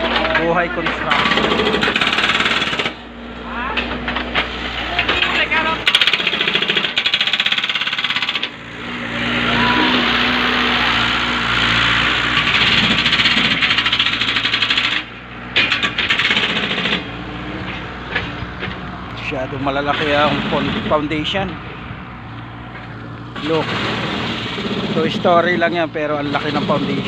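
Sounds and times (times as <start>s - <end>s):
jackhammer hammering: 0.0s - 3.2s, 3.8s - 18.8s, 19.6s - 21.7s, 23.3s - 27.0s.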